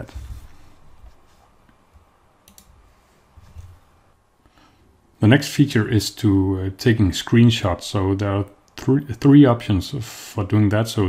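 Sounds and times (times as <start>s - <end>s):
computer mouse click: 2.4s - 2.7s.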